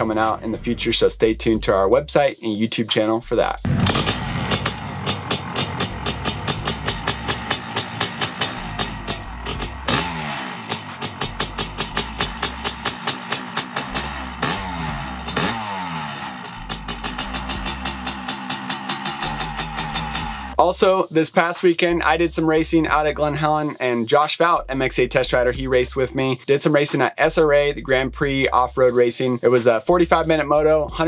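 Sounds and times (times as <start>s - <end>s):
background music: 0.0s - 4.0s, 20.5s - 31.0s
two-stroke engine revving: 3.6s - 20.6s.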